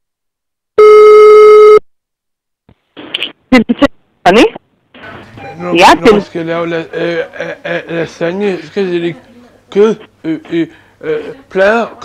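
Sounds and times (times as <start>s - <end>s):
telephone ringback beep: 0.8s - 1.8s.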